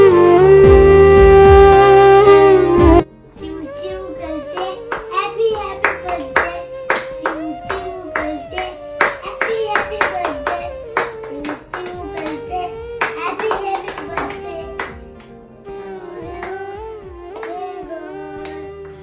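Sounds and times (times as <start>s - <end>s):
hands clapping in rhythm: 4.5s - 15.4s, 16.3s - 19.0s
high voice singing: 15.8s - 19.0s.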